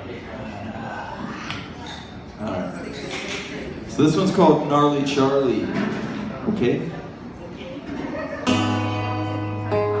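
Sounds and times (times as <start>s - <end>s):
acoustic guitar strumming: 8.4s - 10.0s.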